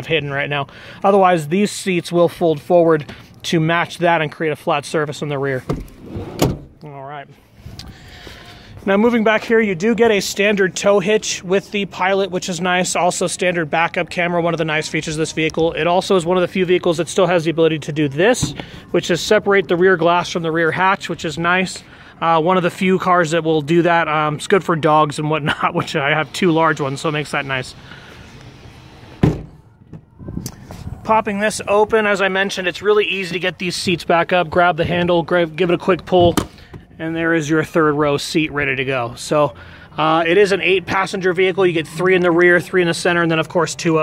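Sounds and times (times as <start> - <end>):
car door shutting thump: 5.7 - 6.8, 29.2 - 29.6.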